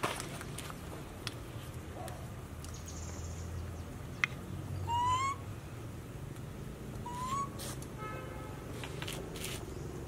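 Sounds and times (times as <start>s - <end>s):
monkey coo call: 4.8s - 5.4s, 7.0s - 7.6s.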